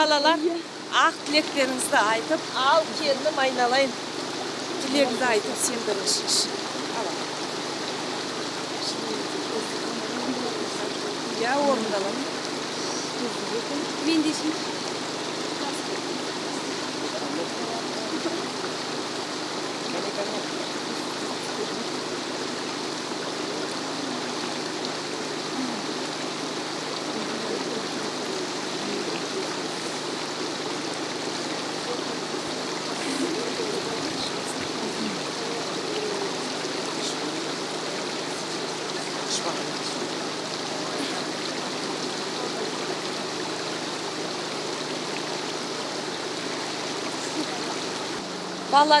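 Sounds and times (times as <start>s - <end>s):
spring water running: 0.0s - 49.0s.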